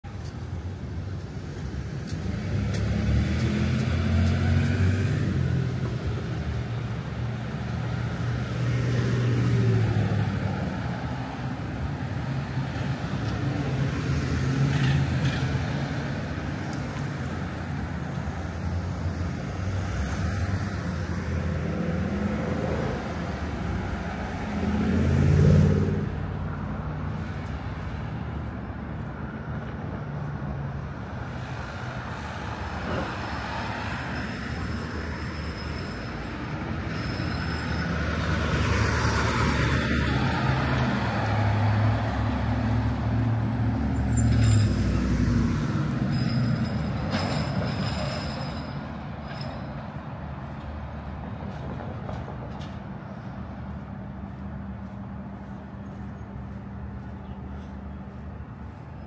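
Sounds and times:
vehicles passing on street: 0.0 - 59.0.

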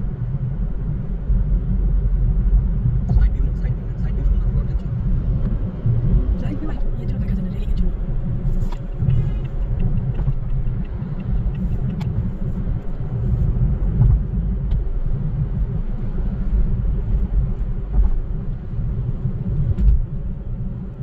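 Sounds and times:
car cabin road rumble: 0.0 - 21.0.

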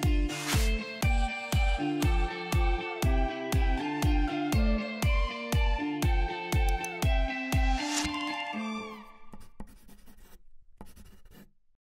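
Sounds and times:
pen scratching on paper: 9.2 - 11.6.

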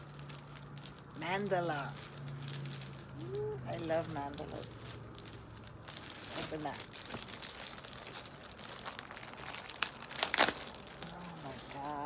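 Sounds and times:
plastic bag crinkling: 0.0 - 12.0
sharp plastic crackles: 0.0 - 12.0.

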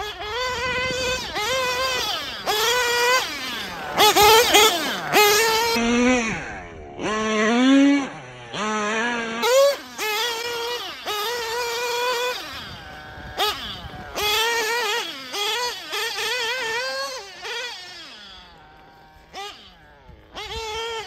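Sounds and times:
model car engine revving: 0.0 - 21.0.

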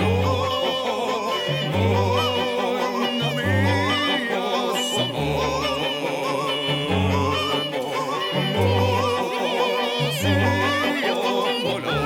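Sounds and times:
operatic voice singing: 0.0 - 12.0.

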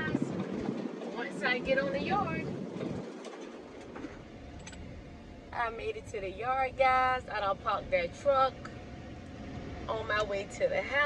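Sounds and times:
vehicle cabin hum and rumble: 0.0 - 11.0.

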